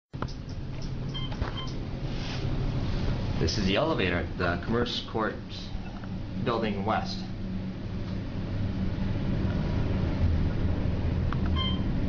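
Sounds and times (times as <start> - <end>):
low elevator hum: 0.2 - 12.0.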